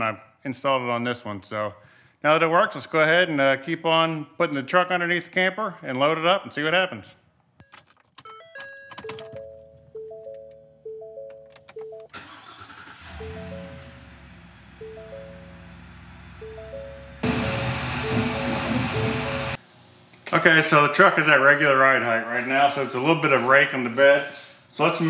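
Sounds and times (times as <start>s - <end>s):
dashboard chimes: 8.2s - 12.2s, 13.2s - 19.6s
truck engine running: 12.2s - 19.6s.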